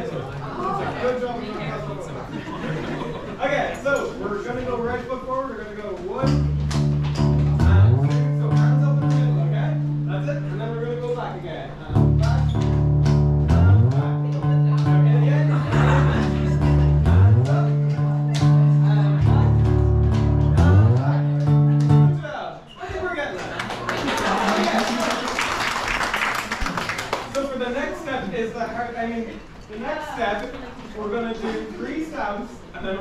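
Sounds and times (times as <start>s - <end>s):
guitar-led dance tune: 6.2s - 10.1s, 12.0s - 22.2s
sliding bass notes: 6.2s - 11.1s, 11.9s - 22.2s.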